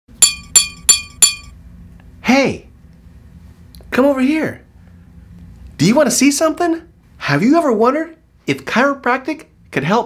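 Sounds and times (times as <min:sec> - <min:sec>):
taps on glass: 0:00.2 - 0:01.5.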